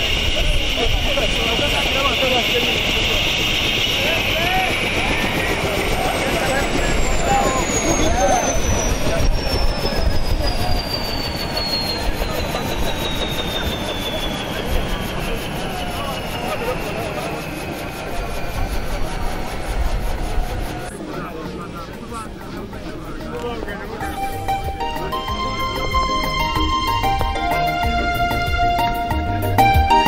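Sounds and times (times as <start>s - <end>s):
faint crowd voices: 0.0s - 30.0s
helicopter rotor rumble: 0.0s - 30.0s
turbine whine falling in pitch: 0.0s - 30.0s.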